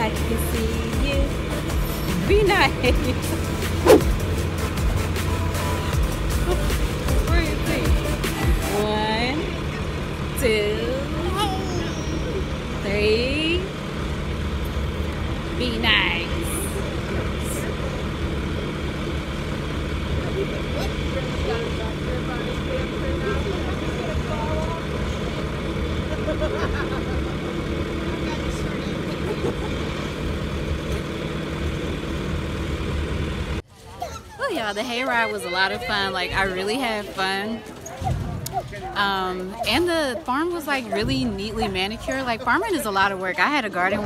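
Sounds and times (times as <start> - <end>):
background music: 0.0 - 9.6
tractor engine rumbling: 0.0 - 44.0.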